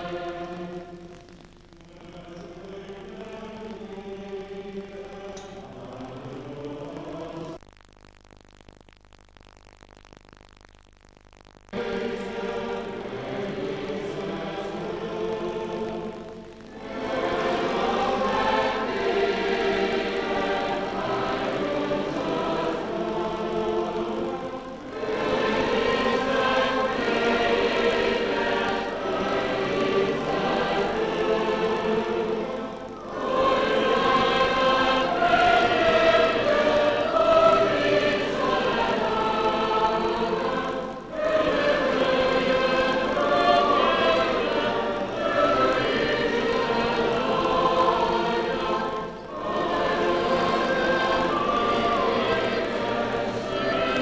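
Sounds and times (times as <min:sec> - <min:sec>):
choir singing: 0:00.0 - 0:01.0, 0:02.0 - 0:07.6, 0:11.8 - 0:54.0.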